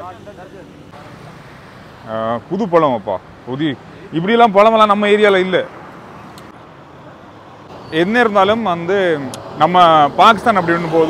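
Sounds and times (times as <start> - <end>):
road traffic hiss: 0.0 - 11.0.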